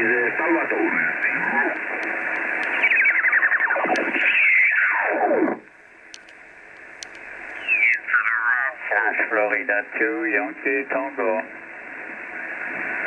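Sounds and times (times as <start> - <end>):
radio stations sliding in pitch: 0.0 - 5.6
faint radio band hiss: 0.0 - 13.0.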